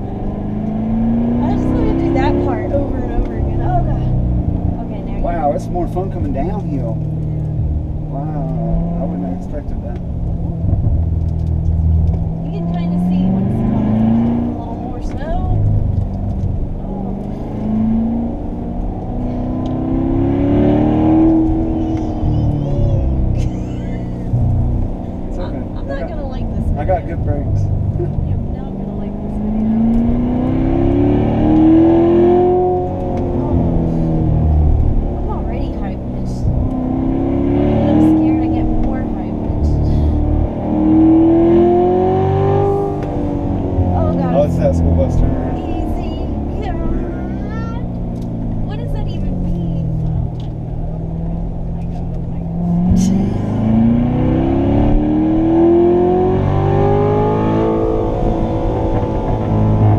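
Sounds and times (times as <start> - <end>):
car engine rumbling and revving: 0.0 - 59.9.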